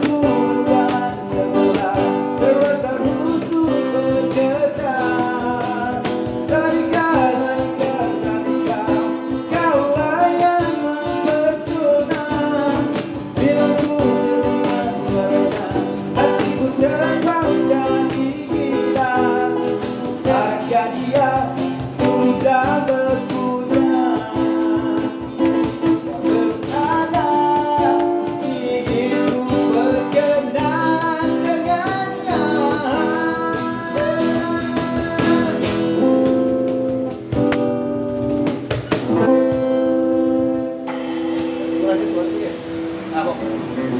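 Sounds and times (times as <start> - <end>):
person singing: 0.0 - 36.8
strummed acoustic guitar: 0.0 - 43.9
steady rhythmic pulse: 40.6 - 43.9.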